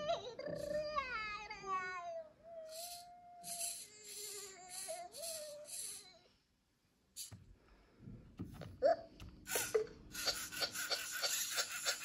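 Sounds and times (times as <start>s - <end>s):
robot cartoon crying sound: 2.6s - 6.1s.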